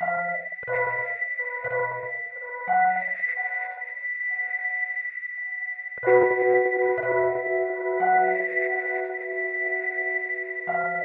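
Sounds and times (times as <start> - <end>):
ambient electronic music: 6.0 - 11.0.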